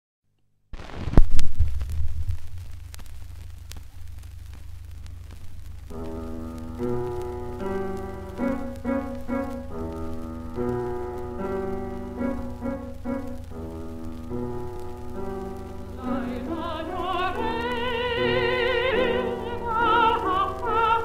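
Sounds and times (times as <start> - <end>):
low recording hum: 0.8 - 21.0
solo piano melody over chords: 5.9 - 21.0.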